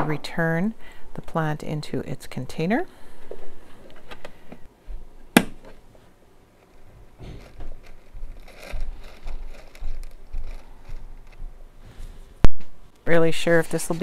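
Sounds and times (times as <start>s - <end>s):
clay pebbles rustling and rattling: 6.6s - 11.4s.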